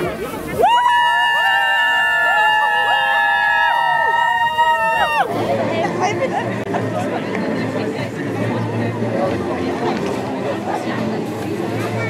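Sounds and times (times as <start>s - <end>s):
high voices screaming: 0.6s - 5.3s.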